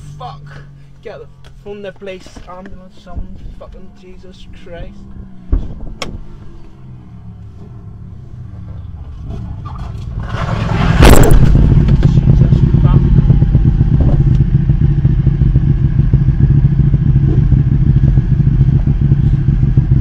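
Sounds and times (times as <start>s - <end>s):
motorcycle engine: 4.3s - 20.0s
sudden loud rush: 10.2s - 14.3s.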